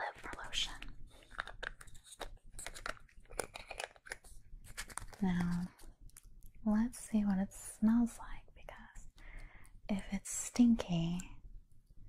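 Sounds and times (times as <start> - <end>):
plastic tube crinkling and clicking: 0.0 - 6.6.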